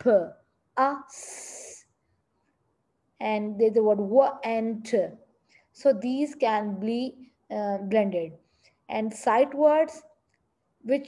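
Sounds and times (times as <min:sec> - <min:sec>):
person speaking: 0:00.0 - 0:01.9, 0:03.2 - 0:10.2.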